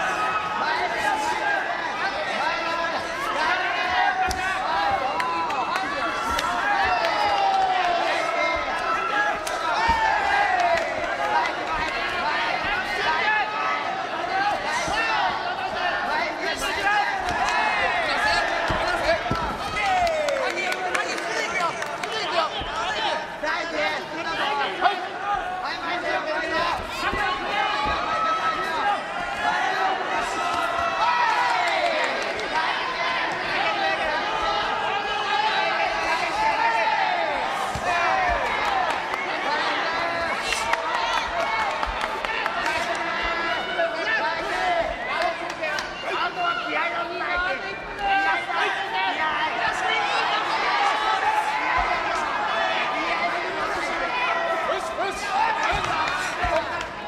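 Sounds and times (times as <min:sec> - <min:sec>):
crowd shouting: 0:00.0 - 0:57.0.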